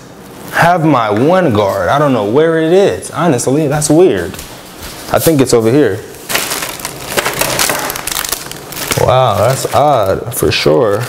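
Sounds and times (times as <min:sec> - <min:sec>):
hands rummaging through hard objects: 0:06.3 - 0:10.0.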